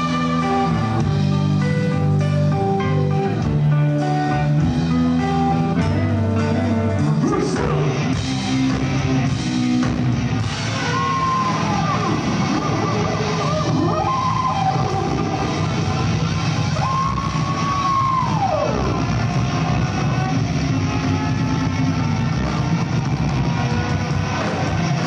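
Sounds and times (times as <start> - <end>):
ska-punk band playing live: 0.0 - 25.0.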